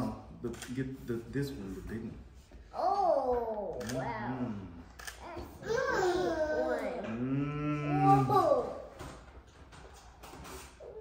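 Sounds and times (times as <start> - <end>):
soft child's voice: 2.7 - 8.9.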